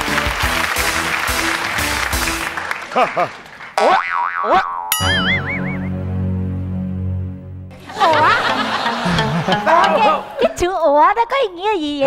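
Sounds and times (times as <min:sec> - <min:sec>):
comic boing sound effect: 0:03.8 - 0:06.0.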